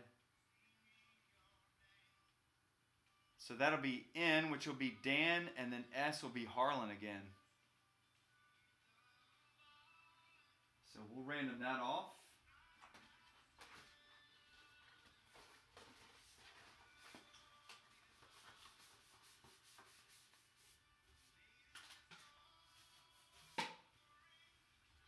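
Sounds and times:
faint background music: 0.0s - 25.0s
paper and cardboard rustling: 15.2s - 19.9s.

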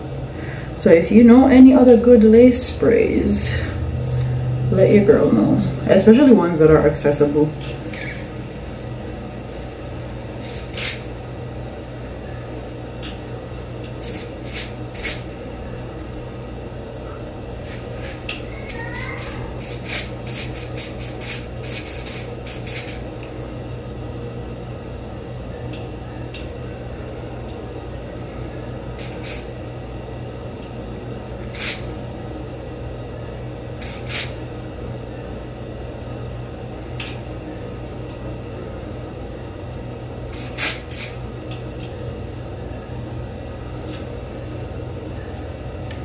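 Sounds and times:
steady low hum: 0.0s - 46.0s
aerosol spray can hissing: 10.4s - 11.0s, 14.0s - 15.2s, 19.6s - 23.0s, 29.0s - 29.5s, 31.5s - 31.9s, 33.8s - 34.4s, 40.4s - 41.2s
aerosol spray hisses: 19.6s - 23.0s.

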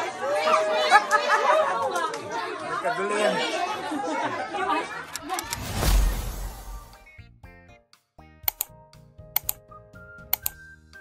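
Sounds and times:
people talking over one another: 0.0s - 6.7s.

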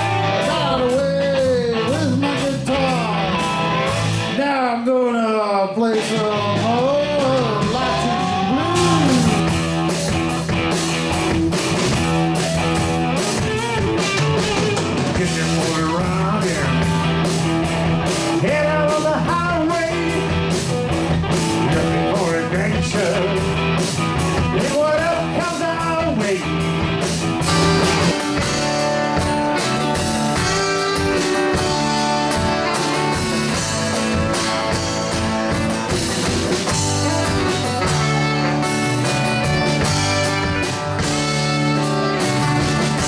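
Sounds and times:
live rock band playing: 0.0s - 43.0s
pitch-bending lead guitar: 0.0s - 43.0s.

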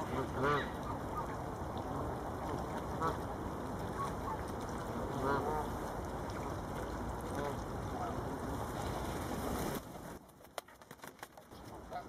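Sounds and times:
low rush of background noise: 0.0s - 12.0s.

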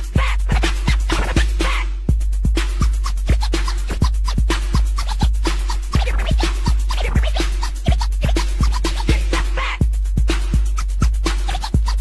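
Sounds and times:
turntable scratching: 0.0s - 1.8s, 2.5s - 12.0s
electro hip-hop dance track: 0.0s - 12.0s.

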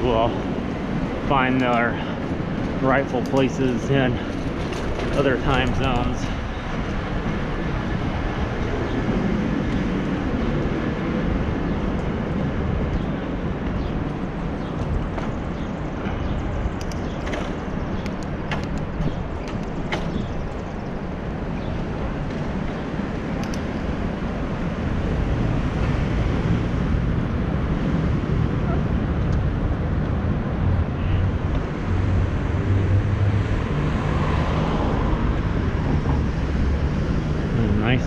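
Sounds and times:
city traffic: 0.0s - 38.0s
road noise: 0.0s - 38.0s.

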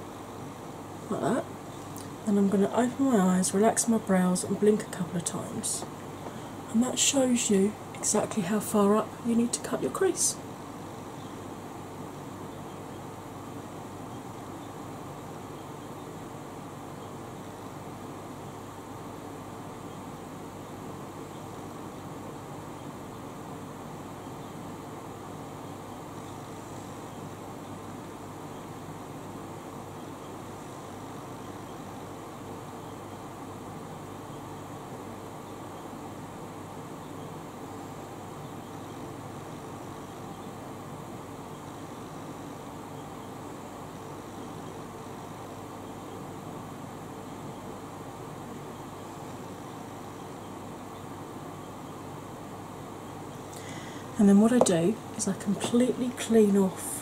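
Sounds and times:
electric fan whirring: 0.0s - 57.0s
faint constant hum: 0.0s - 57.0s.

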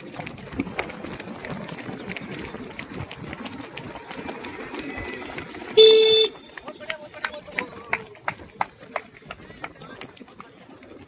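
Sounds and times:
runners' footfalls on dirt: 0.0s - 11.0s
horn blast: 5.8s - 6.6s.

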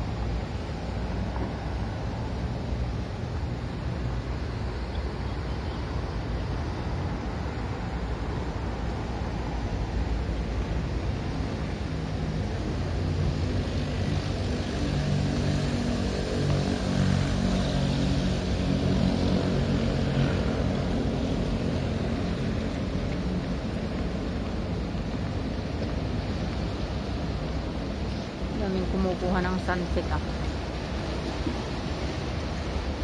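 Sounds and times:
low engine drone: 0.0s - 33.0s
outdoor noise: 0.0s - 33.0s.

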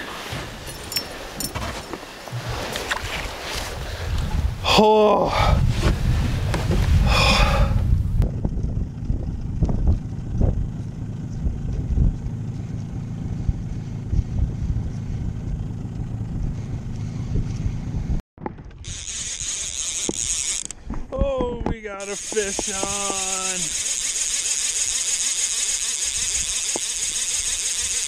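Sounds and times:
boat engine low rumble: 0.0s - 27.8s
wind buffeting microphone: 2.3s - 23.5s.

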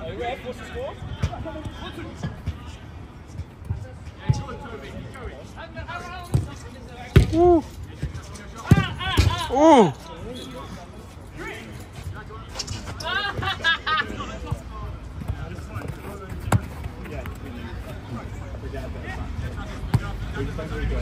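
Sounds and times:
football being kicked: 7.1s - 7.5s, 19.9s - 20.1s.

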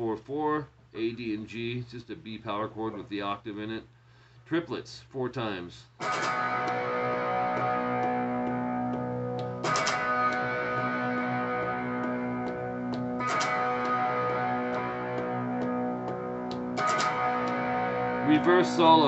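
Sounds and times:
electric guitar picked power chords: 6.0s - 19.0s
strummed guitar chord hits: 6.0s - 19.0s.

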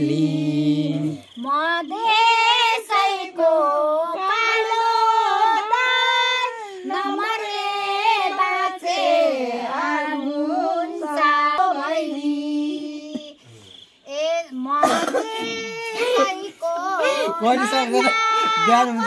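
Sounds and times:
girl singing unaccompanied: 0.0s - 19.0s.

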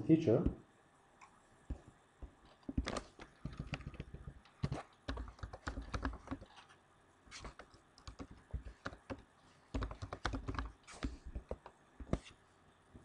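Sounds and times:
typing on computer keyboard: 2.7s - 6.6s, 7.4s - 11.7s.

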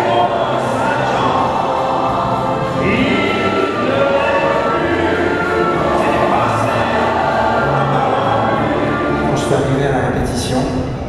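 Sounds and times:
massed choir singing with orchestra: 0.0s - 10.6s.

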